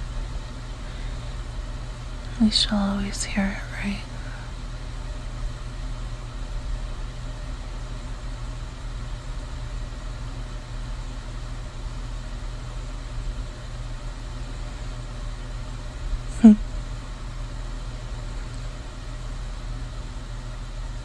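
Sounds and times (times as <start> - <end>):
low rumbling hum: 0.0 - 21.0.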